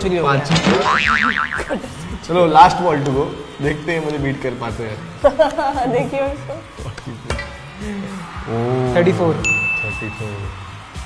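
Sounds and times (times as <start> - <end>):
comic wobbling boing tone: 0.6 - 1.8.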